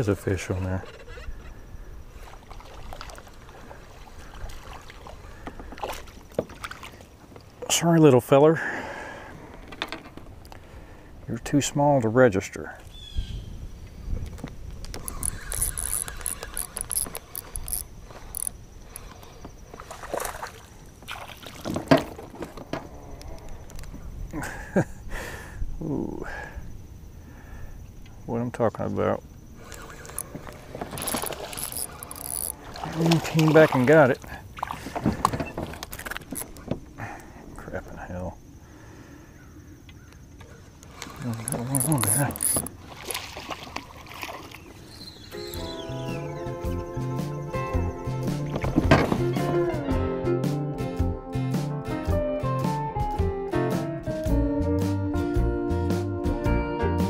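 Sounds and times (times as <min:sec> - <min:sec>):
kayak tackle knocks and rattles: 0:05.4 - 0:07.6, 0:09.4 - 0:10.6, 0:14.2 - 0:24.1, 0:30.0 - 0:37.0, 0:40.4 - 0:44.5, 0:47.8 - 0:49.6
faint clicks: 0:09.5 - 0:10.6, 0:14.2 - 0:19.6, 0:23.2 - 0:24.4.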